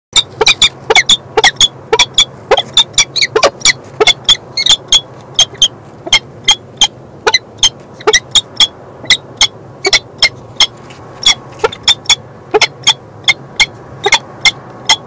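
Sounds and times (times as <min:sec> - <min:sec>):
falcons calling: 0:00.2 - 0:15.0.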